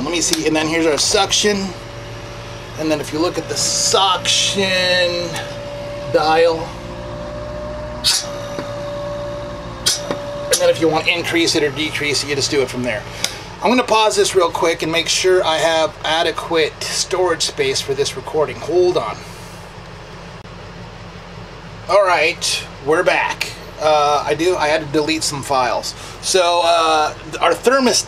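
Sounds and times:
vacuum pump humming and whining: 0:00.0 - 0:28.0.

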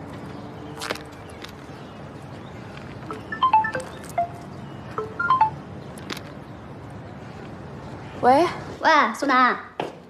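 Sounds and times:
phone ringtone chime notes: 0:03.1 - 0:05.6.

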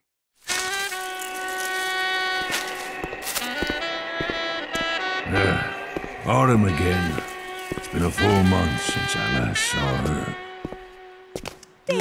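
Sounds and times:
sustained chord music: 0:00.9 - 0:10.6.

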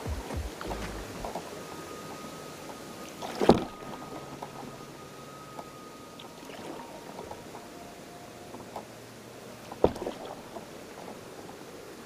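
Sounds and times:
small splashes: 0:09.7 - 0:11.2.

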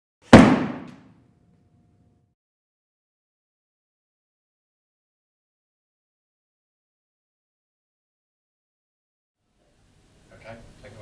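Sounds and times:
heavy sharp thud: 0:00.3 - 0:01.0.

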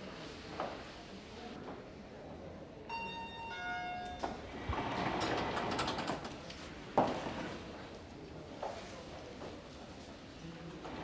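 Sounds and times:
elevator doors sliding open: 0:04.5 - 0:06.4.

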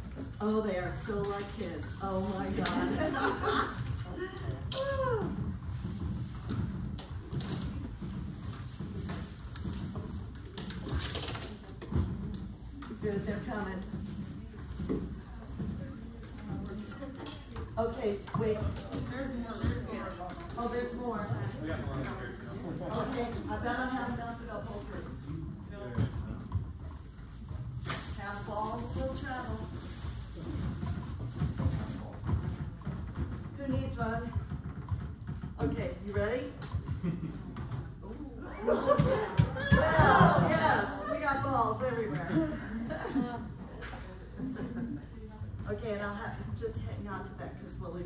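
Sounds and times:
rubber balls thudding: 0:00.0 - 0:44.5.

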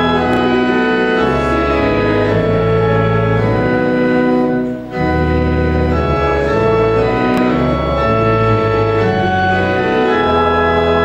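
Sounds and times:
church organ chords: 0:00.0 - 0:11.0.

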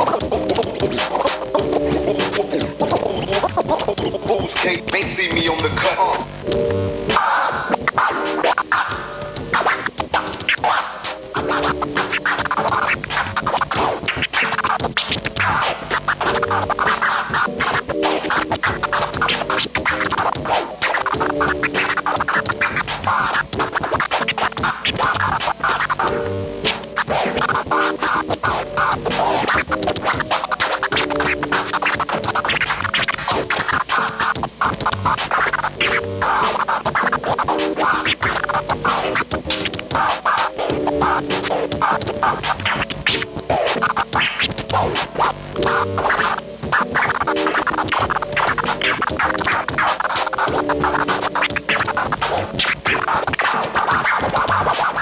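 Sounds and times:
looping beat with melodic phrase: 0:00.0 - 0:55.0
turntable scratching: 0:00.0 - 0:55.0.

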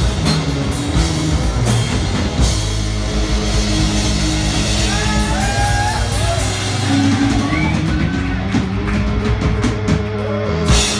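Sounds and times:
drums striking steady beat: 0:00.0 - 0:10.9
rock band playing: 0:00.0 - 0:10.9.

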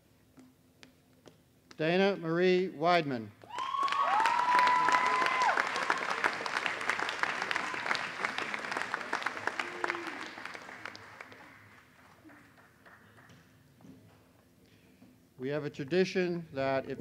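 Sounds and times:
high drawn-out cheers: 0:03.4 - 0:11.4
audience applauding: 0:03.5 - 0:13.3.

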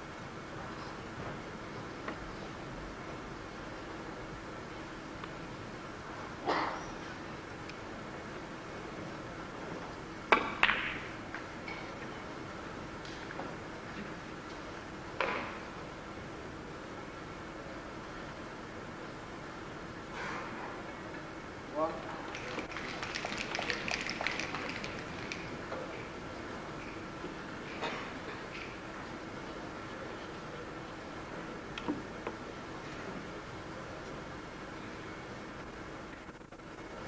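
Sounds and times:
small crowd clapping: 0:22.1 - 0:26.1.

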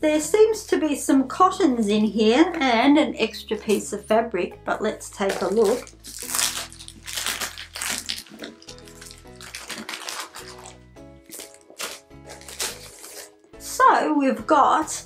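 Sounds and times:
background music: 0:00.0 - 0:15.0
paper and plastic packaging crinkling: 0:05.2 - 0:13.4.

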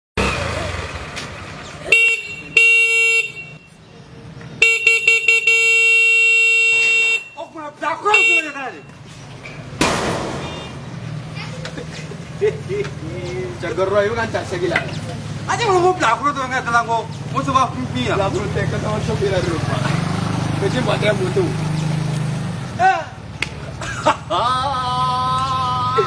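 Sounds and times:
motorcycle horn honking: 0:01.9 - 0:03.8, 0:04.6 - 0:09.0.

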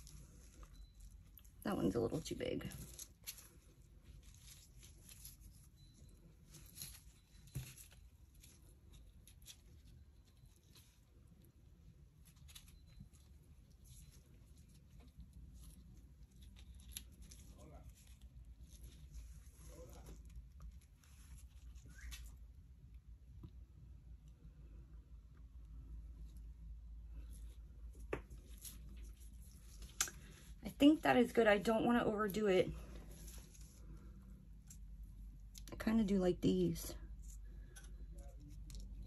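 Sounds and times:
faint clicks and rustles: 0:00.0 - 0:35.9.

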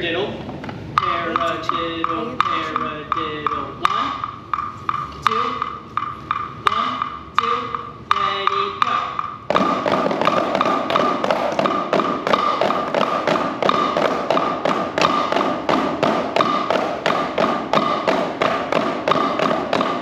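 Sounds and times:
drumsticks tapping practice pads: 0:00.6 - 0:20.0.

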